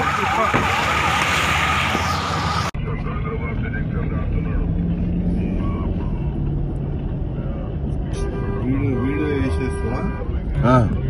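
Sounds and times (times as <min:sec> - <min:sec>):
noisy street sound: 0:00.0 - 0:11.0
car driving heard from inside: 0:00.2 - 0:11.0.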